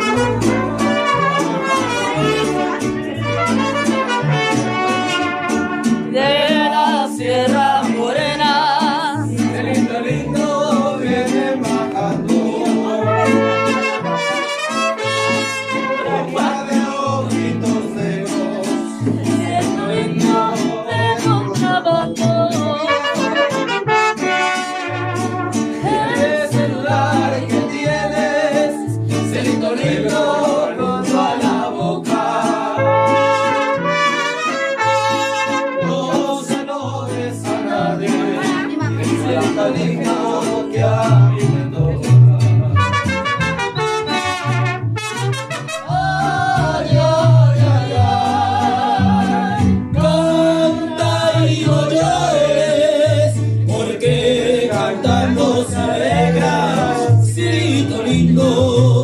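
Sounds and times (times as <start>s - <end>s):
mariachi band playing: 0.0s - 59.0s.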